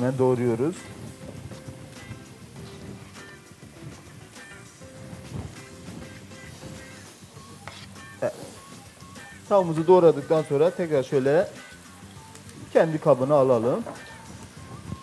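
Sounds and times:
quiet background music: 0.0s - 15.0s
vegetables sizzling in pot: 0.0s - 15.0s.

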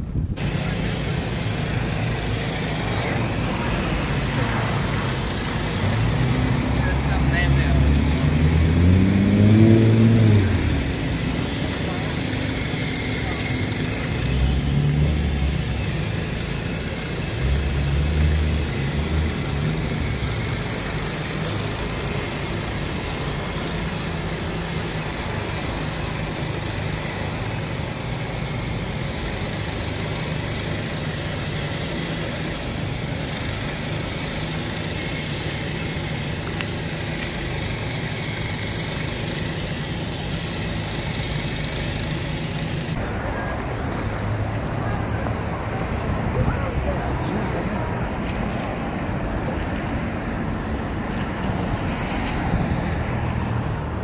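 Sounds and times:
traffic hum: 0.0s - 54.0s
vehicle engine rising in pitch: 2.7s - 16.7s.

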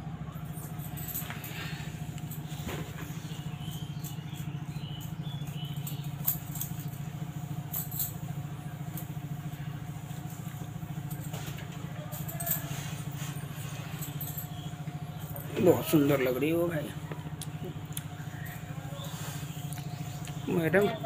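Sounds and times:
small motor humming with flutter: 0.4s - 21.0s.

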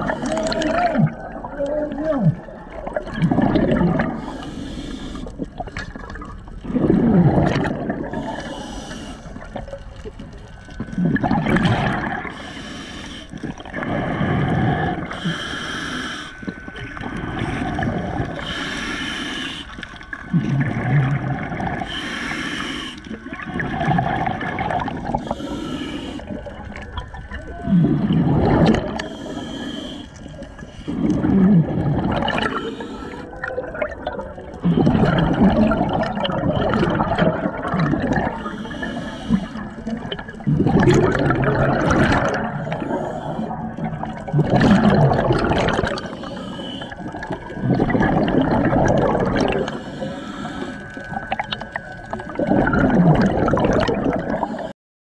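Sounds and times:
exhaled bubbles bursting: 0.0s - 4.3s, 5.3s - 8.6s, 9.3s - 12.4s, 13.4s - 15.3s, 16.5s - 18.6s, 20.0s - 21.9s, 23.1s - 25.4s, 26.3s - 29.4s, 30.4s - 32.7s, 33.3s - 50.1s, 50.8s - 54.7s
regulator hiss on inhale: 4.2s - 5.4s, 8.1s - 9.6s, 12.3s - 20.2s, 21.8s - 23.2s, 25.1s - 26.5s, 29.0s - 31.2s, 32.5s - 33.4s, 38.4s - 39.8s, 42.6s - 43.6s, 46.0s - 47.2s, 49.6s - 51.3s.

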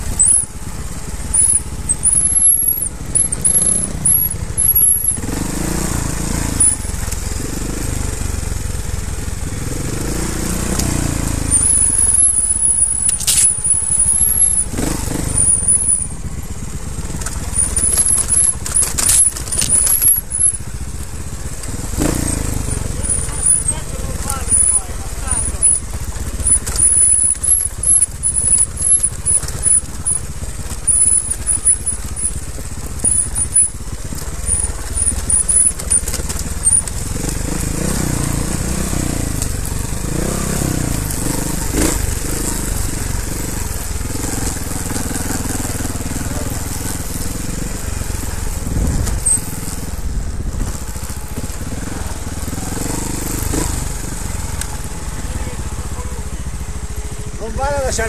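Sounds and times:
motorcycle engine revving: 0.0s - 58.0s
wheels rumbling on rocky ground: 0.0s - 58.0s
short high squeaks: 0.1s - 0.6s, 1.2s - 5.2s, 6.4s - 7.0s, 10.9s - 16.3s, 17.3s - 20.6s, 22.0s - 37.0s, 48.8s - 49.7s.

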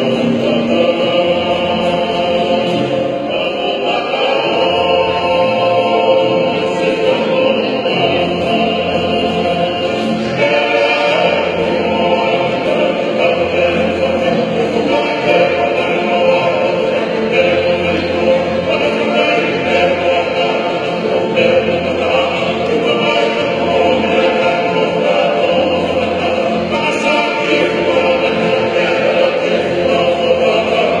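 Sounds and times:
acoustic guitars: 0.0s - 31.0s
men's choir singing: 0.0s - 31.0s.

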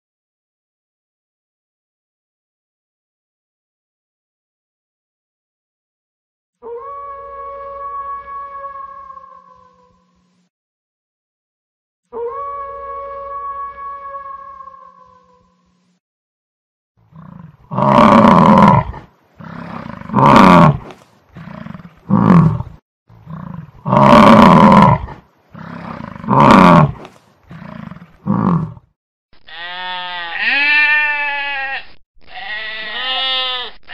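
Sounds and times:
goat bleating: 29.4s - 33.9s.

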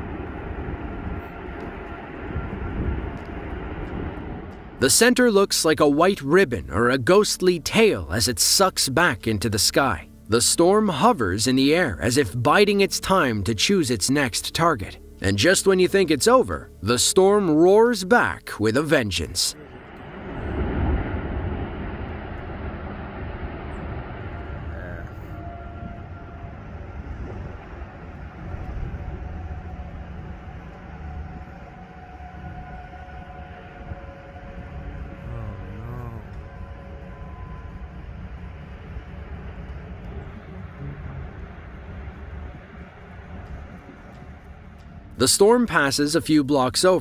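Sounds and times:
wind rushing over microphone: 0.0s - 4.8s, 19.6s - 45.1s
low rumbling wind roar: 0.0s - 7.2s, 19.6s - 46.0s
faint whistling tones: 24.2s - 45.2s.

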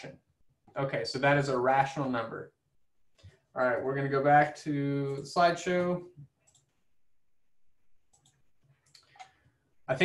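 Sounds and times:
faint computer mouse clicks: 6.4s - 6.7s, 8.1s - 9.4s.

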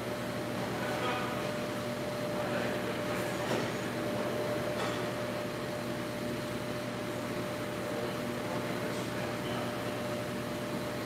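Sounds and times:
mechanical equipment hum: 0.0s - 11.0s.

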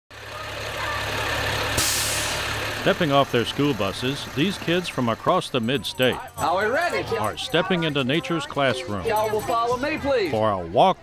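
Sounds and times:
diesel bus engine idling: 0.1s - 10.3s.

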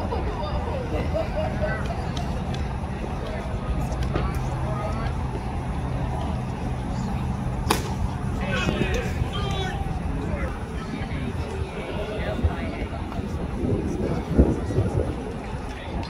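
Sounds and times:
faint voices: 0.0s - 16.0s
low outdoor rumble: 0.0s - 16.0s
baseball popping into mitt: 7.7s - 8.0s.

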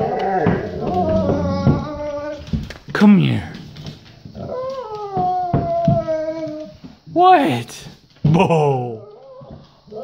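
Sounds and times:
dog howling whine: 0.0s - 2.5s, 4.4s - 6.8s.

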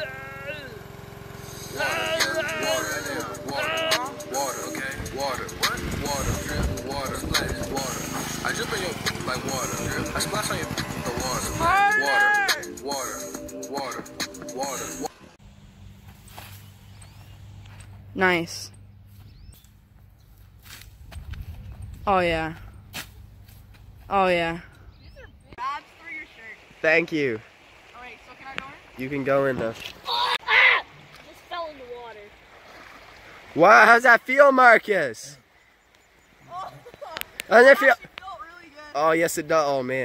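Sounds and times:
child yelling: 0.0s - 0.8s, 1.8s - 4.3s, 11.6s - 12.7s, 30.0s - 32.3s
pressure washer running: 0.0s - 11.8s
water spray hissing: 1.3s - 11.6s.

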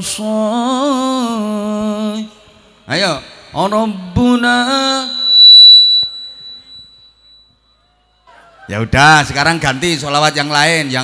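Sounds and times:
high-pitched feedback ring: 2.7s - 9.4s
person singing: 3.5s - 5.5s.

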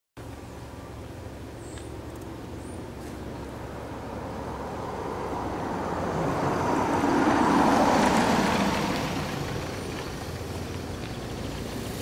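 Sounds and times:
truck driving past: 0.7s - 12.0s.

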